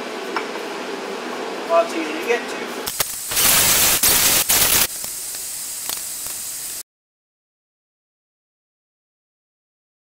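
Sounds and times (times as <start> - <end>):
pneumatic tool air hiss: 2.9 - 6.8.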